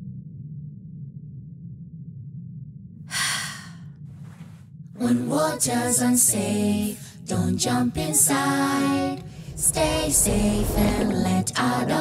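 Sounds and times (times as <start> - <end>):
soft low background music: 4.0 - 12.0.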